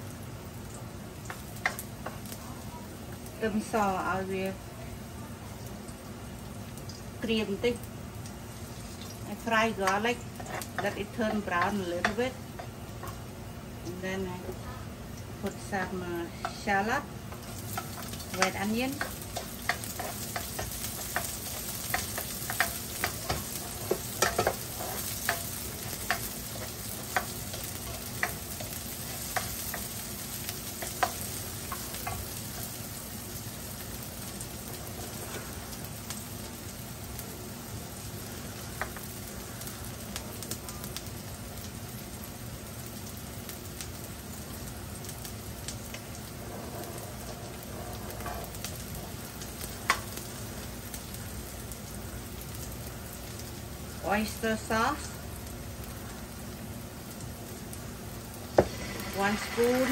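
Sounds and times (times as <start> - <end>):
garlic sizzling in hot oil: 0.0 - 59.9
spatula scraping a wok: 9.9 - 13.2, 16.3 - 33.0, 46.2 - 50.1, 58.6 - 59.9.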